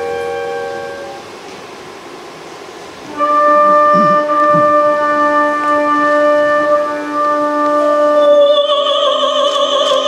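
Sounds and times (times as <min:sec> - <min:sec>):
orchestra playing held chords: 0:00.0 - 0:01.4, 0:03.0 - 0:10.0.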